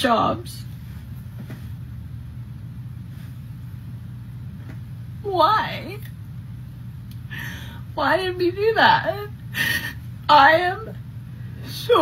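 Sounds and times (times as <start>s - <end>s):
low hum and rumble: 0.0s - 12.0s.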